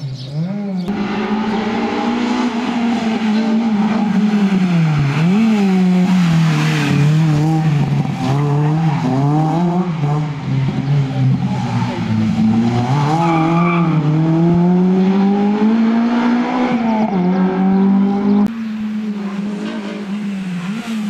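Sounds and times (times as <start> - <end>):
car engine revving: 0.8 - 21.0.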